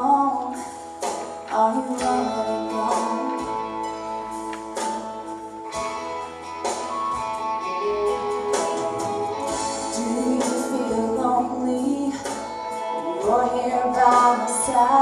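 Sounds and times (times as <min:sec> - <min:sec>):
woman singing into microphone: 0:00.0 - 0:04.3, 0:09.4 - 0:15.0
guitar ballad accompaniment: 0:00.0 - 0:15.0.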